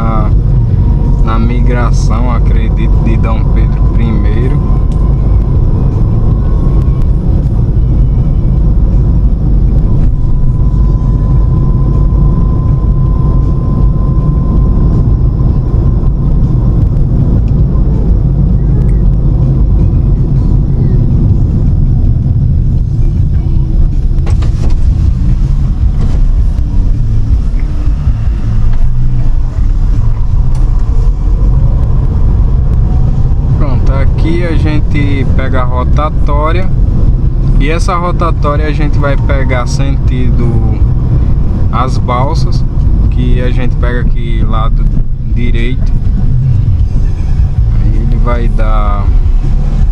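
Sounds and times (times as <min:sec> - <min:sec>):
car interior engine and tyre rumble: 0:00.0 - 0:49.9.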